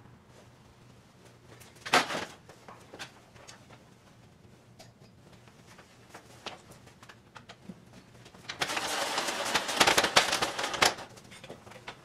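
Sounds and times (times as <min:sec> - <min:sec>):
metal stepladder rattling clatter: 0:08.5 - 0:11.8.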